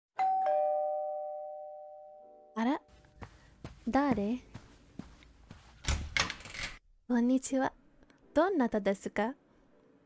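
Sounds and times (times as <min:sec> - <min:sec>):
two-note doorbell chime: 0:00.2 - 0:02.6.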